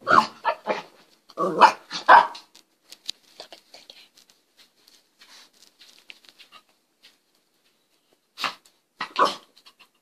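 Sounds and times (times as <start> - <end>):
small dog barking: 0.0 - 2.5, 8.4 - 9.5.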